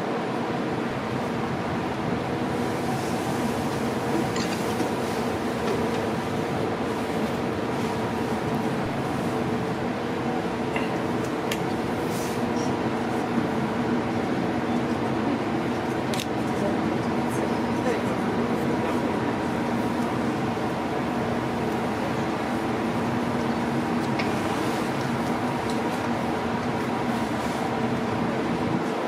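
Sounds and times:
ship machinery humming: 0.0 - 29.0.

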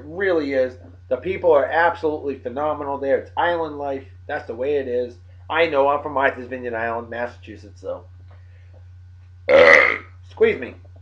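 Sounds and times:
man burping loudly: 9.5 - 10.1.

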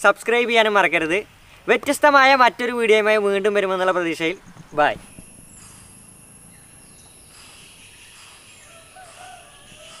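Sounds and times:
insects chorus: 3.8 - 10.0
rooster crowing: 8.3 - 10.0.

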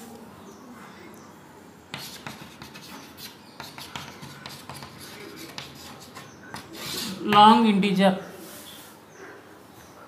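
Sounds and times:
chalk scratching on blackboard: 1.9 - 7.3.

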